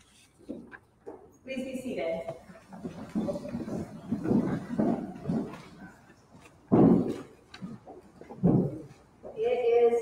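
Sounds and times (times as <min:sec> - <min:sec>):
congregation shuffling: 0:02.2 - 0:09.7.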